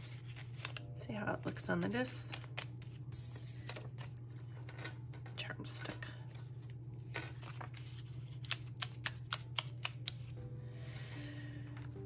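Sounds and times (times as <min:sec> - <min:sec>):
paper page clicking onto discs: 0:00.0 - 0:00.9, 0:07.1 - 0:10.3
low steady hum: 0:00.0 - 0:12.0
soft background music: 0:00.0 - 0:12.0.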